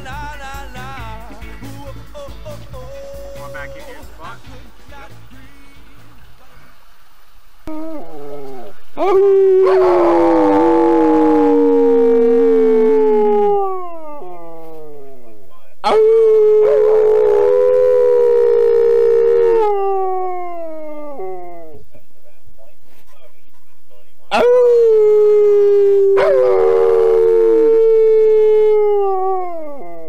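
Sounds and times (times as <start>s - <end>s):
man howling: 2.8s - 4.2s, 7.7s - 22.0s, 24.3s - 30.0s
dog howling: 2.9s - 4.0s, 7.7s - 21.9s, 24.3s - 30.0s.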